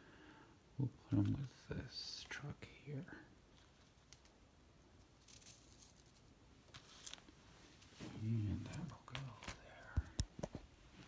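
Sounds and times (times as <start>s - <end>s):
person speaking: 0.8s - 3.4s, 8.0s - 10.3s
card packaging rustling: 5.2s - 7.4s.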